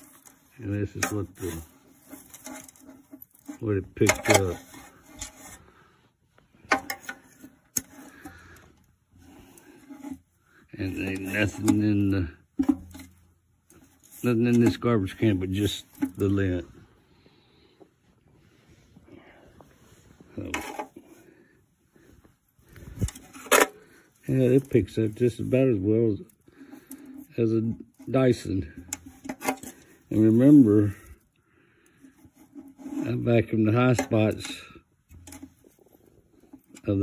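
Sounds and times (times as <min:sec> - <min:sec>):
hand rummaging through dust: 0:00.0 - 0:05.6
fork scraping through lint: 0:00.0 - 0:05.8.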